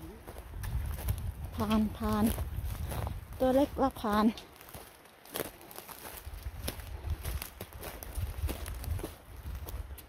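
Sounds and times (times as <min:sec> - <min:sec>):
footsteps on gravel and twigs: 0:00.0 - 0:10.0.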